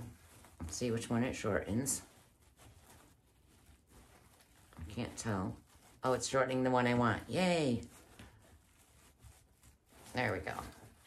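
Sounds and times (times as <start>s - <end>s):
ribbon rustling: 0.0s - 11.0s.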